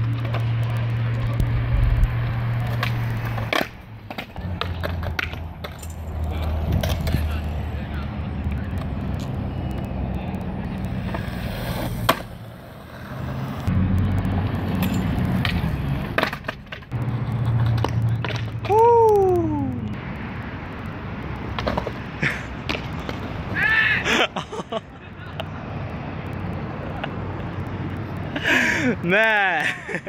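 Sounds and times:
skateboard clacking on ground: 0.0 - 13.7, 14.3 - 19.9, 21.2 - 23.6
skateboard wheels rolling on concrete: 0.0 - 30.0.

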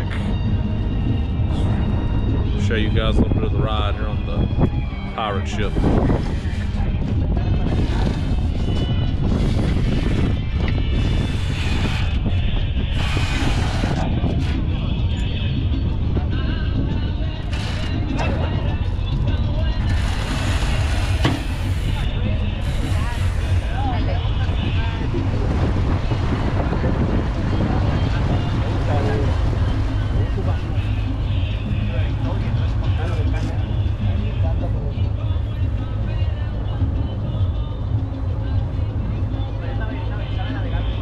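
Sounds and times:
background music: 0.0 - 41.0
ship engine droning: 0.0 - 41.0
wind noise on microphone: 0.0 - 41.0
passengers' voices: 1.4 - 41.0.

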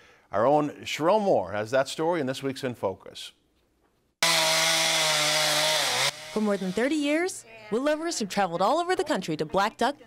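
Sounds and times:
chainsaw cutting wood: 4.2 - 7.4.

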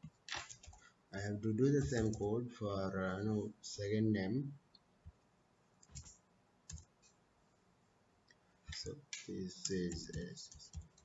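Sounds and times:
keyboard and mouse clicks: 0.0 - 0.8, 5.8 - 7.2, 8.7 - 11.0.

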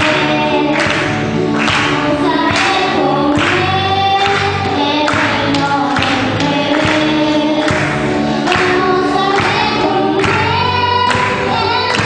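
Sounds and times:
young singers singing: 0.0 - 12.0.

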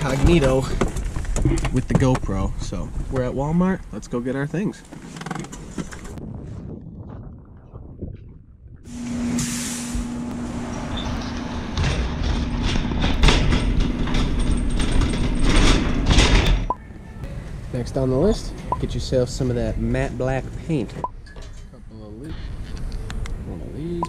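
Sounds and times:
steady hum: 8.9 - 21.2
shopping cart rolling and rattling: 10.6 - 16.5.

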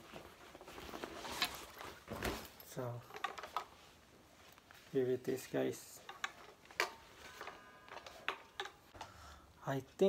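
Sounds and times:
fabric gig bag rustling: 0.0 - 8.9.

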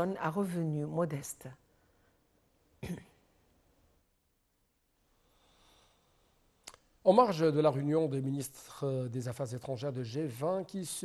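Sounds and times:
faint background hiss: 0.0 - 11.0
person coughing: 2.8 - 3.2.

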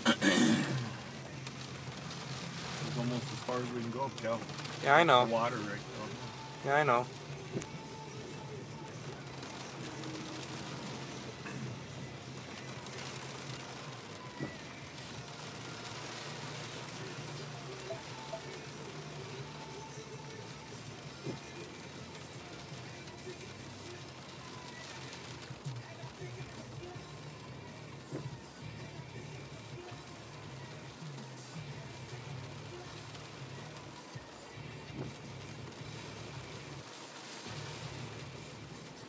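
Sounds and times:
faint music: 0.0 - 39.0
tyres on wet road: 0.0 - 39.0.

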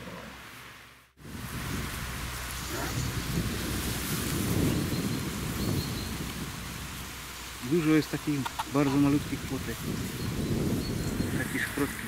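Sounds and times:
wind buffeting microphone: 1.2 - 12.0.

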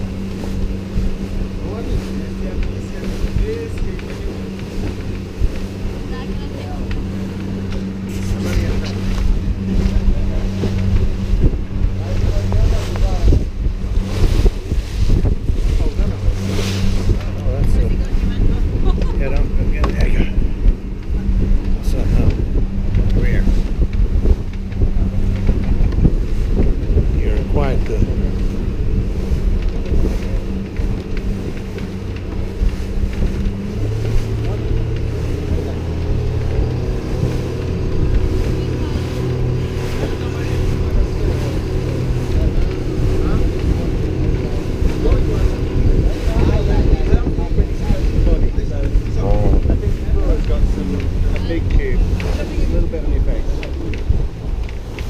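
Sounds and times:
boat engine running: 0.0 - 55.0
wind buffeting microphone: 0.0 - 55.0.

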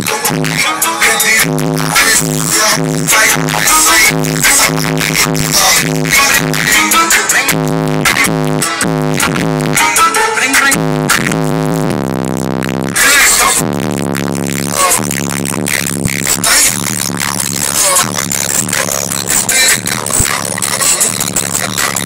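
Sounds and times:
loud music with heavy bass: 0.0 - 22.0.

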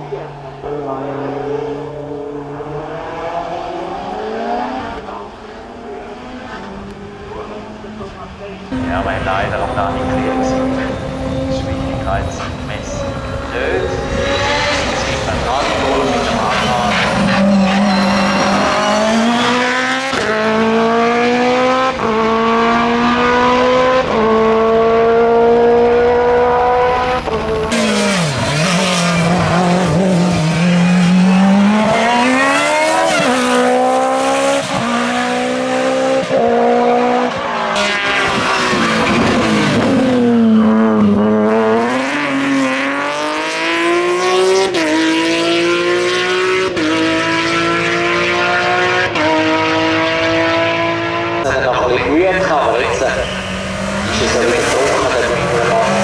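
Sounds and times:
race car engines at full throttle: 0.0 - 56.0.

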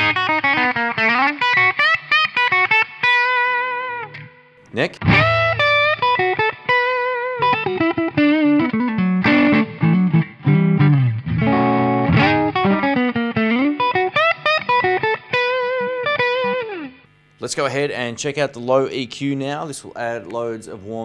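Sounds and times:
overdriven electric guitar lead: 0.0 - 17.3.

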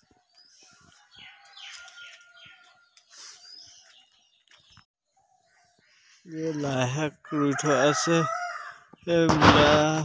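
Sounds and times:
birds calling: 0.0 - 7.3.

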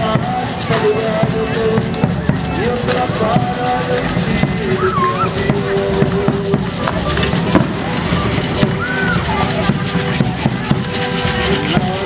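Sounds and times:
crowd voices: 0.0 - 12.0
held melody notes: 0.0 - 12.0
feet stamping on stone paving: 0.1 - 12.0.

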